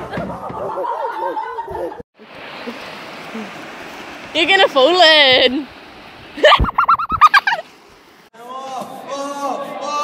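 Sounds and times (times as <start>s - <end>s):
high-pitched cackling laughter: 0.4s - 2.0s, 6.4s - 7.6s.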